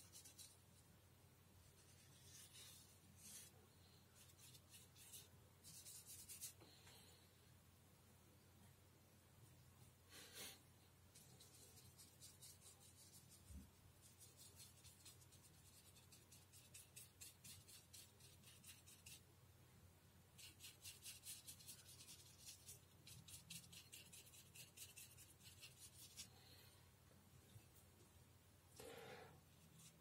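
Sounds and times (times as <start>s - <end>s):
paintbrush dabbing on paper: 0.0s - 0.8s, 1.6s - 6.6s, 11.1s - 19.3s, 20.3s - 26.3s, 29.5s - 30.0s.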